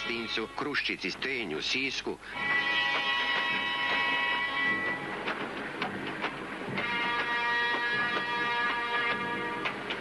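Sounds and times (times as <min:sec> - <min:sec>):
railway wagons clanking: 0:00.0 - 0:10.0
steam train whistle: 0:02.3 - 0:05.3, 0:06.8 - 0:10.0.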